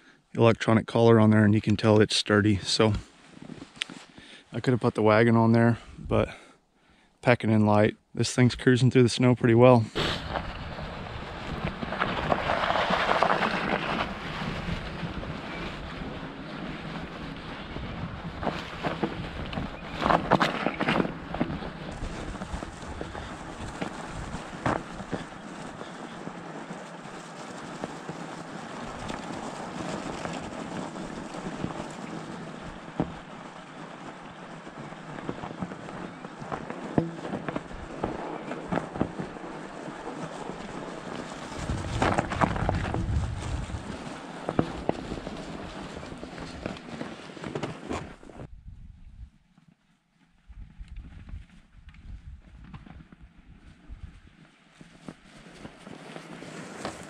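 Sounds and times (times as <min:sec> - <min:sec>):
wind on microphone: 0:10.0 - 0:26.1, 0:40.4 - 0:46.9, 0:48.0 - 0:49.4, 0:50.4 - 0:54.4
tires rolling through snow: 0:10.0 - 0:48.5, 0:50.3 - 0:57.0.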